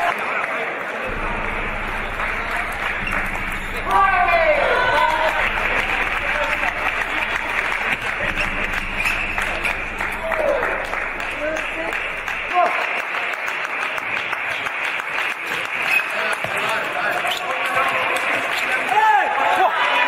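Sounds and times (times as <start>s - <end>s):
spectators applauding: 0.0s - 20.0s.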